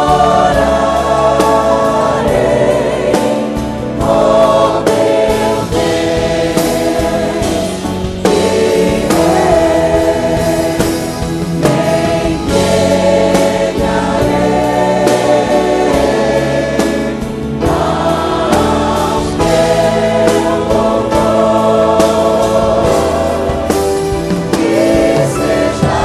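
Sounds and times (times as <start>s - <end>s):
gospel choir singing: 0.0s - 26.0s
live band playing: 0.0s - 26.0s.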